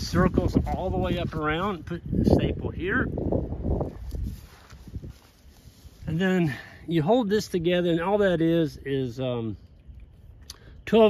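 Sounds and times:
microphone handling noise: 0.0 - 5.7
wind rumble on microphone: 0.0 - 6.2.

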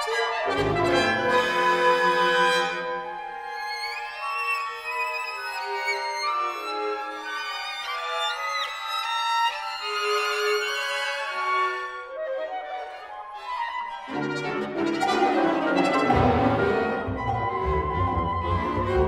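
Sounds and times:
chamber orchestra: 0.0 - 19.0.

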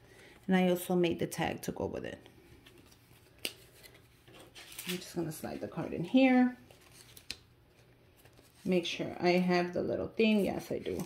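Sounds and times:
handling of paper card: 2.6 - 9.0, 10.3 - 11.0.

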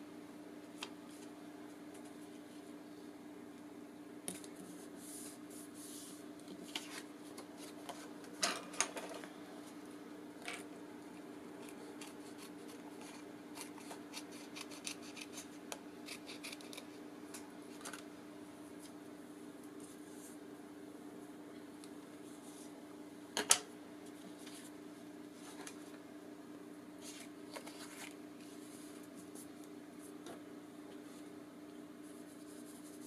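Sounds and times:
faint steady hum: 0.0 - 33.0
paper rustling: 27.0 - 29.5.

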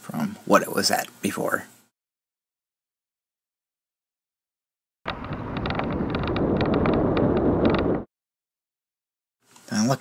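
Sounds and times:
sharp clicks and rattles: 5.1 - 8.1
wind buffeting microphone: 5.1 - 8.1.

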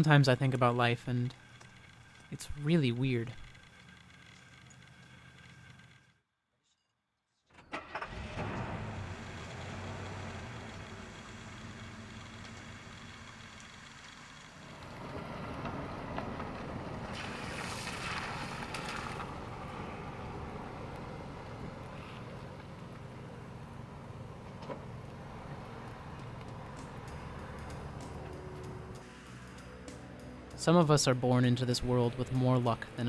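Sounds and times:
car engine running: 0.1 - 6.1, 7.8 - 30.0.

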